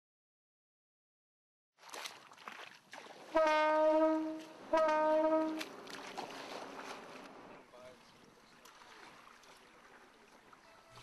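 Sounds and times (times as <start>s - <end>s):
boat horn blasts: 3.3s - 7.2s, 10.6s - 11.0s.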